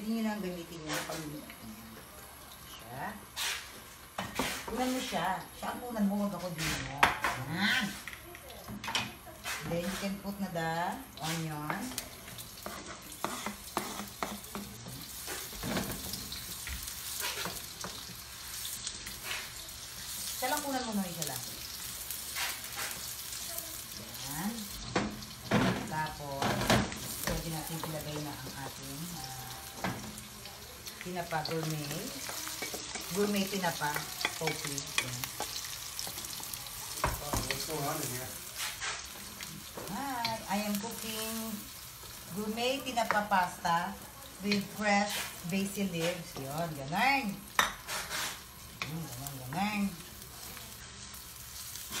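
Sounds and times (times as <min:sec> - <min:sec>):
onions sizzling in oil: 0:00.0 - 0:52.0
wooden spatula stirring: 0:12.6 - 0:16.6.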